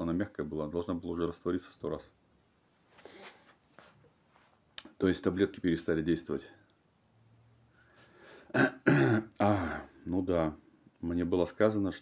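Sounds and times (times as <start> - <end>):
man clearing his throat: 8.5 - 9.9.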